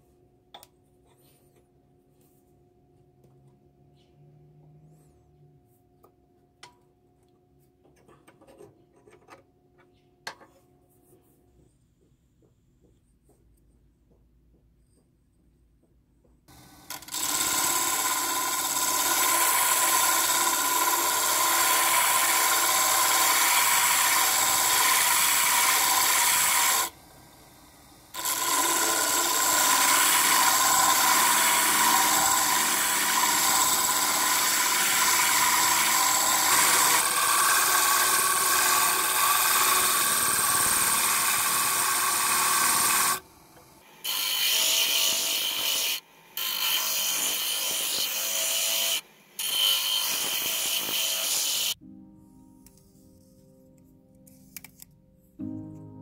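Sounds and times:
sanding disc whirring on wood: 0:16.5 - 0:51.8.

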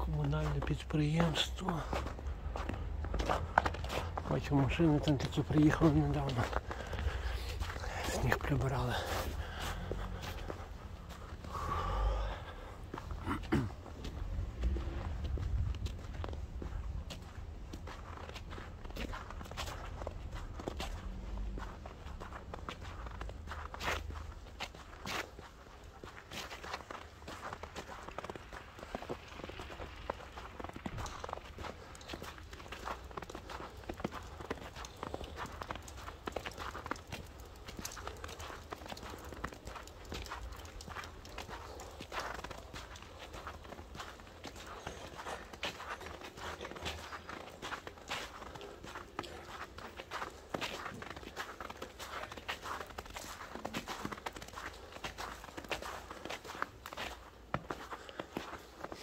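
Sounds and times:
footsteps crunching on snow: 0:00.0 - 0:59.0
low rumble: 0:09.0 - 0:23.6.

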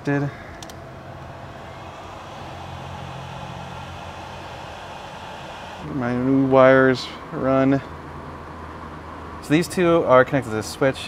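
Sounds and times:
heat gun fan humming: 0:00.5 - 0:06.6.

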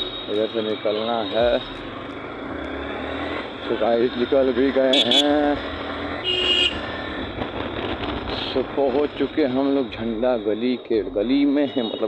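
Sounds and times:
road and wind noise: 0:00.0 - 0:12.0.

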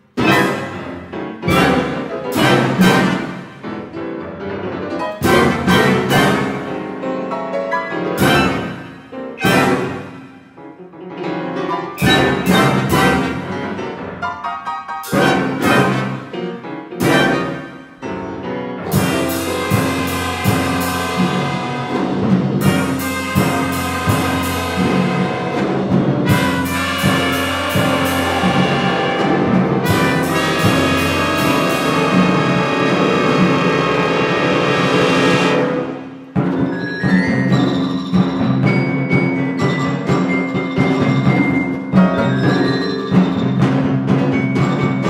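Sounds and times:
wind band playing loudly: 0:00.1 - 0:03.9, 0:05.2 - 0:07.2, 0:08.1 - 0:10.4, 0:12.0 - 0:13.9, 0:15.0 - 0:18.1, 0:18.9 - 0:45.0.

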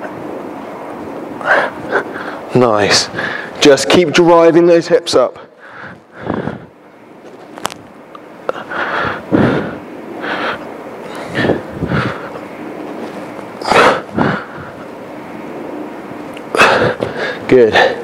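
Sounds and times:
man breathing hard: 0:03.1 - 0:03.6, 0:05.4 - 0:06.8, 0:08.5 - 0:12.5, 0:13.6 - 0:14.9, 0:16.5 - 0:18.0.

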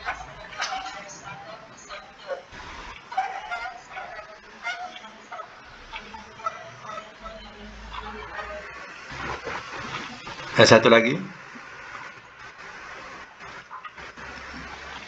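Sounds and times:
person reading aloud over call: 0:10.5 - 0:11.4.

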